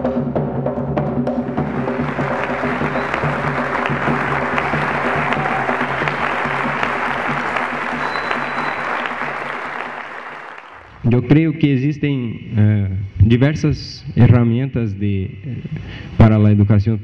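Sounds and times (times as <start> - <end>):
music playing: 1.4 - 10.9
audience applauding: 1.4 - 11.0.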